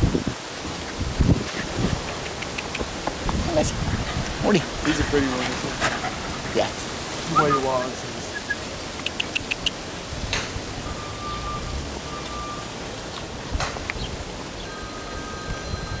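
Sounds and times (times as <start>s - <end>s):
wind noise on microphone: 0.0s - 12.1s, 12.7s - 16.0s
faint steady high tone: 14.6s - 16.0s.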